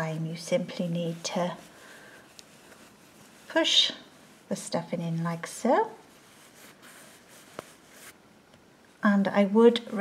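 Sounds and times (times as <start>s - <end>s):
rustling of stuffing and fabric: 0.0s - 10.0s.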